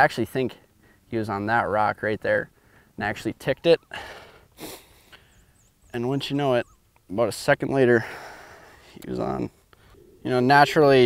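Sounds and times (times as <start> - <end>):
man breathing: 0.6 - 1.1, 2.5 - 3.0, 3.9 - 5.7, 8.0 - 10.2
sharp intake of breath: 3.9 - 5.6.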